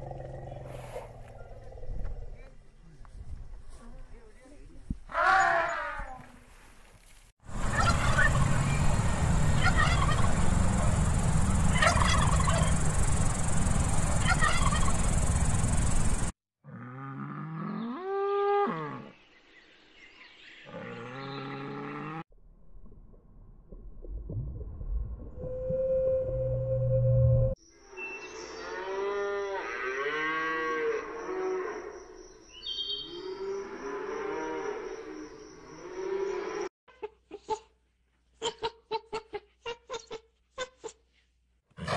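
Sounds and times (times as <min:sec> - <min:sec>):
turkeys gobbling: 0:07.6 - 0:08.6, 0:09.5 - 0:10.9, 0:11.6 - 0:12.8, 0:14.2 - 0:15.1
humpback whale singing: 0:25.4 - 0:27.6.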